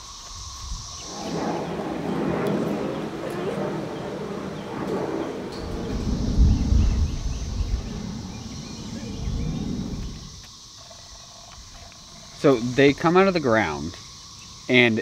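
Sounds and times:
wind on microphone: 0.0s - 10.5s
cicada chorus: 0.0s - 15.0s.

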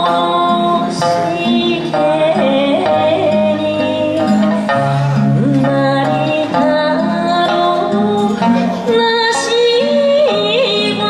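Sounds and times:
sustained backing chords: 0.0s - 11.0s
woman singing folk song: 0.0s - 11.0s.

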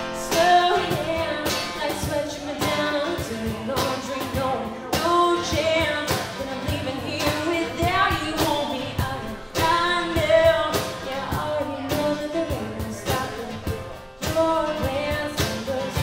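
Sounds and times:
acoustic guitar: 0.0s - 16.0s
woman singing: 0.0s - 16.0s.

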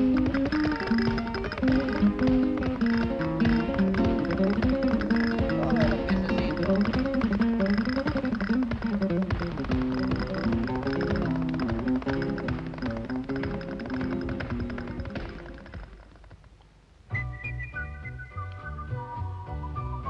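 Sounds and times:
sharp percussive taps: 0.0s - 16.7s
flamenco guitar melody: 0.0s - 20.0s.

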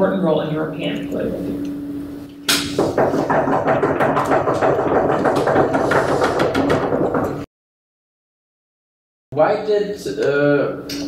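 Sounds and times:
audience knocking on desks: 2.7s - 7.5s.

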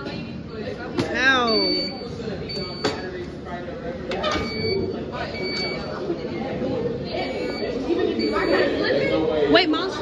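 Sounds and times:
cafeteria chatter: 0.0s - 10.0s.

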